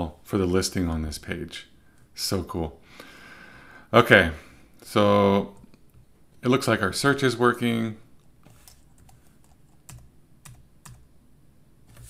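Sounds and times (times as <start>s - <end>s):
keyboard typing: 8.5s - 11.1s.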